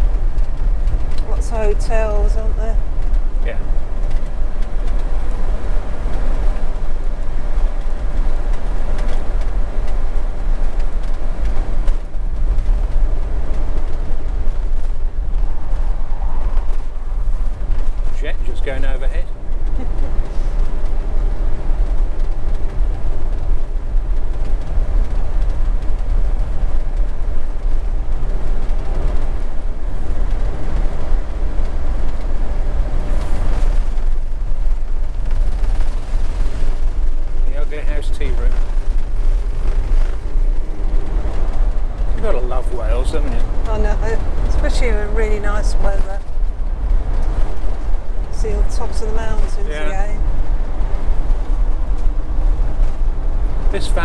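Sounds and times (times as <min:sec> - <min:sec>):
engine rumble: 0:00.0 - 0:54.0
tyres on road: 0:00.0 - 0:54.0.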